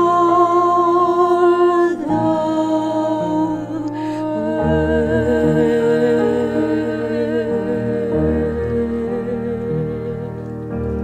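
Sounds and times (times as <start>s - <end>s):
woman singing with vibrato: 0.0s - 10.5s
piano playing sustained chords: 0.0s - 11.0s.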